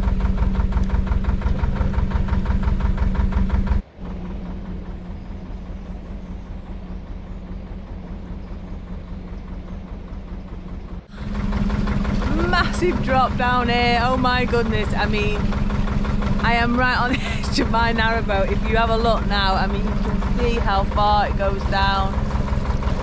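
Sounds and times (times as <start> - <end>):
diesel engine running: 0.0 - 23.0
distant engine: 0.0 - 23.0.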